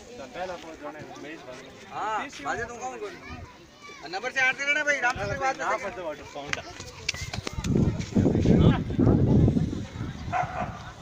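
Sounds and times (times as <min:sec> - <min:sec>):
voices close by: 0:00.0 - 0:11.0.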